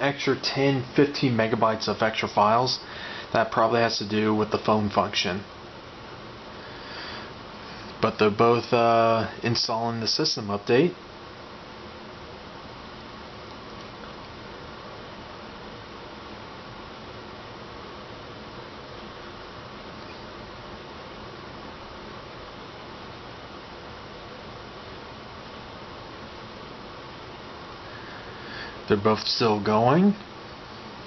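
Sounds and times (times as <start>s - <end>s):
room tone hiss: 0.0s - 31.0s.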